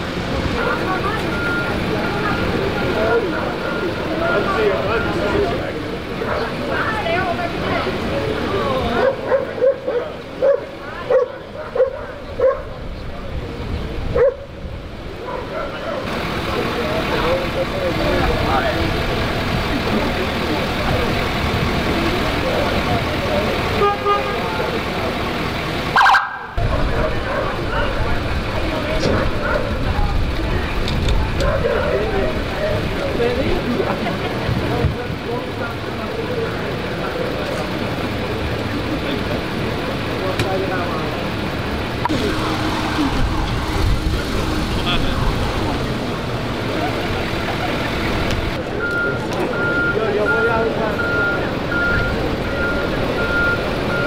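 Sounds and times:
people talking: 0.0 - 14.3, 15.1 - 25.6, 26.6 - 54.0
vehicle engines running: 0.0 - 54.0
dog barking: 9.0 - 12.7, 14.1 - 14.5, 15.2 - 16.0.

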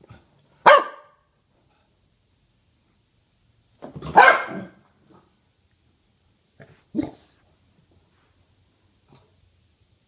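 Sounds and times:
dog barking: 0.6 - 1.3, 4.0 - 4.8.

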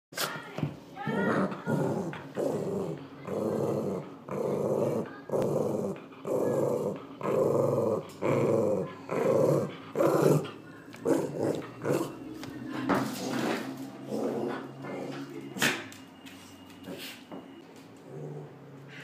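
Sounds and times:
small dog growling: 1.0 - 12.3, 13.1 - 15.3, 18.0 - 19.0.

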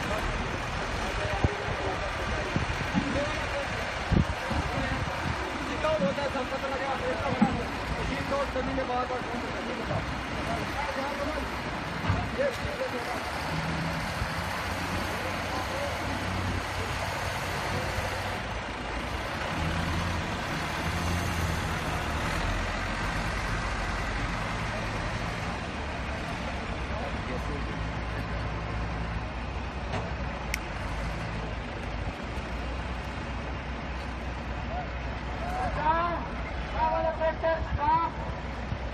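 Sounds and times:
diesel engine running: 0.0 - 37.6.

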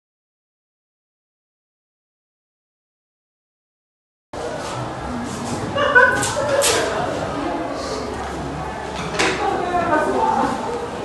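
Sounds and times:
faint murmuring: 4.4 - 11.0.

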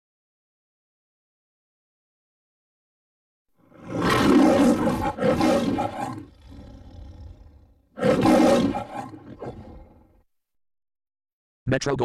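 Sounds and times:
lion growl: 3.6 - 10.2
lion roaring: 3.6 - 10.2.

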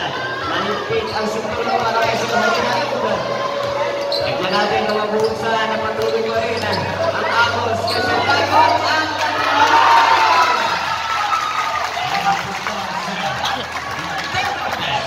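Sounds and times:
crowd talking and shouting: 0.0 - 15.0.

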